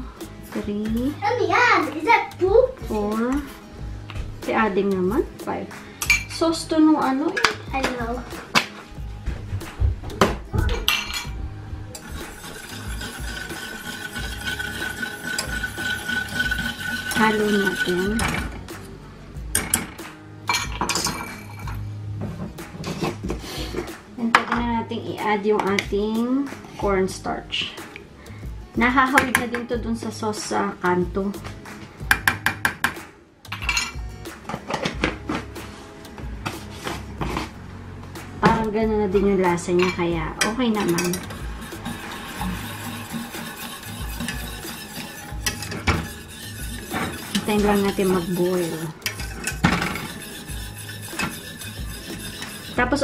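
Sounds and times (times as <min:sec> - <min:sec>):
background music with low beat: 0:00.0 - 0:53.0
whisk stirring in a saucepan: 0:12.0 - 0:18.5, 0:40.7 - 0:53.0.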